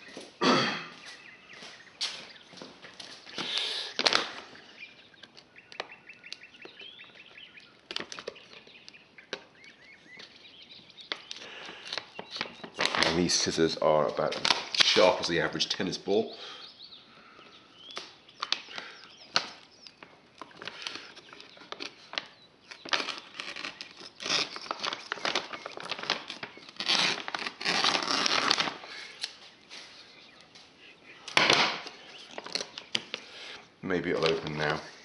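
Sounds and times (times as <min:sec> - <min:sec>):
plastic bag crinkling and tearing: 0:03.1 - 0:04.6, 0:07.7 - 0:09.4, 0:11.1 - 0:13.6, 0:14.2 - 0:15.3, 0:18.0 - 0:29.4, 0:31.3 - 0:33.2.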